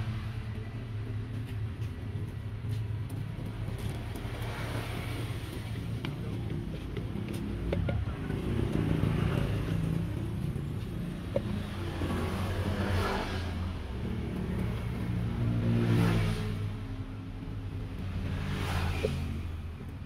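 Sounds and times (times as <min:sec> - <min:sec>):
vehicles passing: 0:00.0 - 0:20.0.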